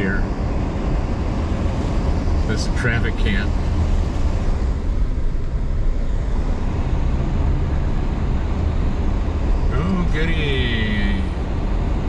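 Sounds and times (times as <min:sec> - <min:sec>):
engine and tyres on wet road: 0:00.0 - 0:12.0.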